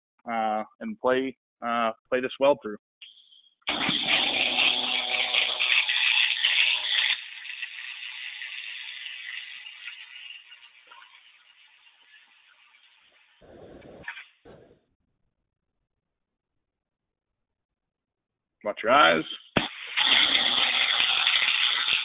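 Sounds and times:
welding arc crackling buzz: 3.1 - 14.6, 19.6 - 22.0.

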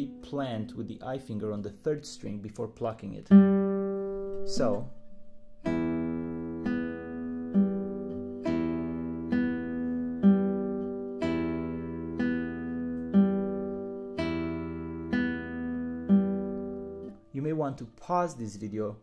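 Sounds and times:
fingerstyle classical guitar arpeggio: 0.0 - 17.3.

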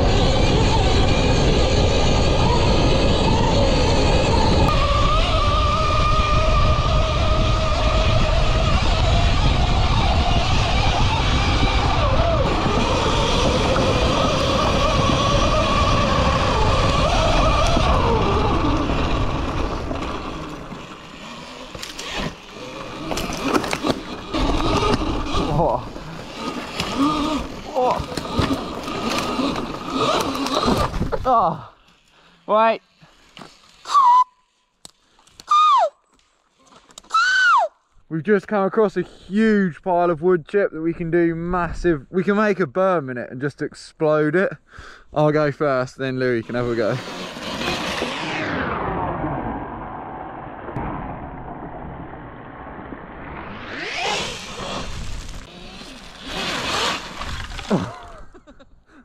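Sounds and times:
wind rush: 0.0 - 21.4, 48.1 - 55.6
electric motor whine: 0.0 - 31.2, 46.4 - 50.3, 53.0 - 58.0.

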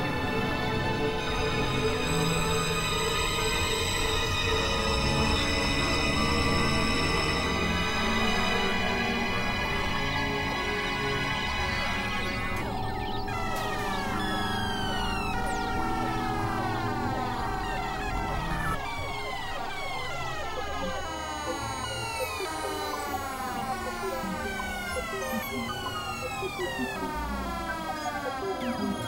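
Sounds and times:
tone sliding downward: 10.1 - 29.0.

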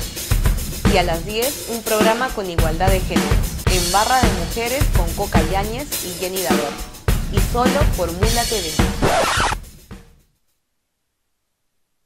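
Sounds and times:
noisy swish: 9.0 - 9.6.

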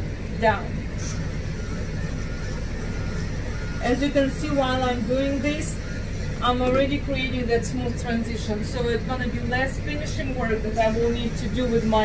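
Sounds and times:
electric clipper buzzing: 1.0 - 8.1, 10.0 - 12.0.

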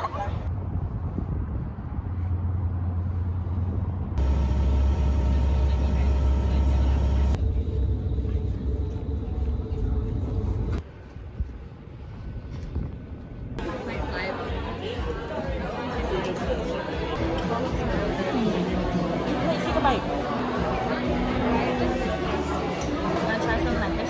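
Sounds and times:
ferry boat low rumble: 0.0 - 14.2.

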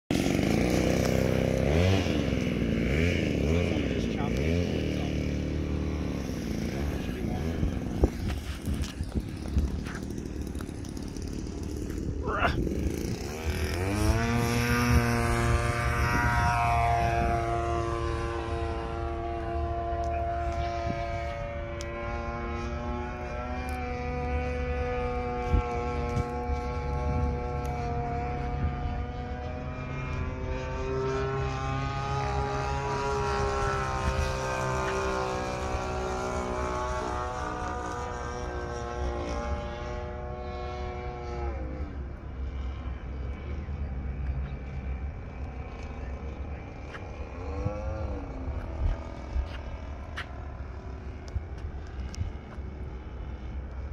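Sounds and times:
model airplane engine: 0.1 - 53.9.

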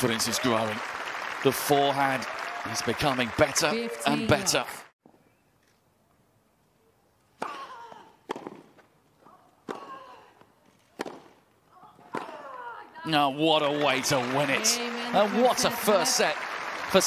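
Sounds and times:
tennis racket hitting ball: 7.4 - 8.8, 9.6 - 10.1, 10.9 - 11.4.

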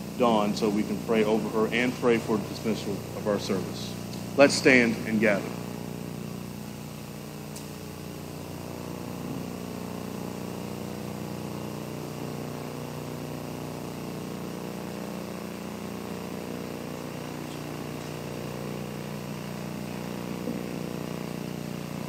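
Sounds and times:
air handling hum: 0.0 - 22.0.

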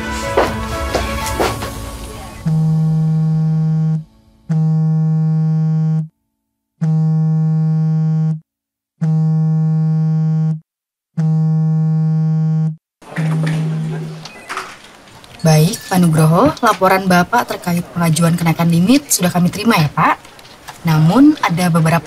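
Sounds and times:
mobile phone vibrating: 2.5 - 6.2, 6.8 - 8.4, 9.0 - 10.6, 11.2 - 14.0.

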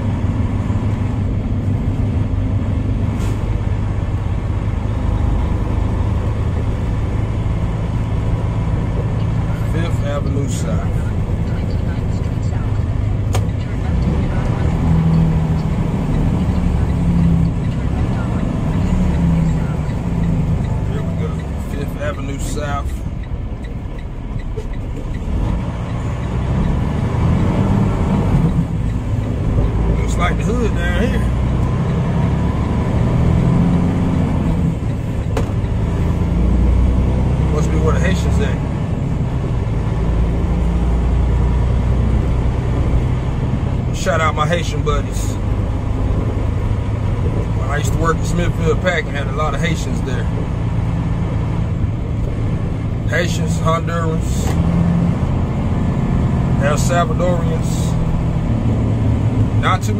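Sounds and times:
truck diesel engine droning: 0.0 - 59.9.

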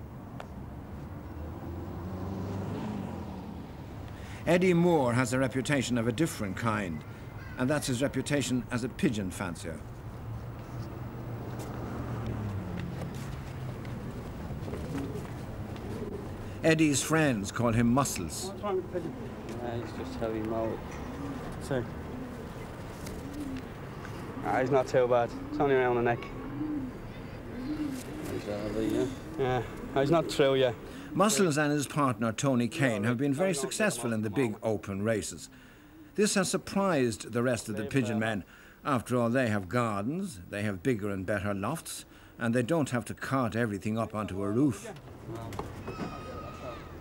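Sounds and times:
faint urban background: 0.0 - 47.0
distant engine hum: 9.8 - 31.2
pigeons cooing: 13.0 - 16.6, 18.4 - 31.0, 45.7 - 47.0.

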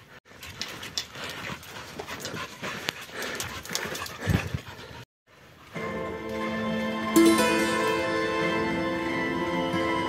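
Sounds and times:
dog panting: 0.0 - 5.8.

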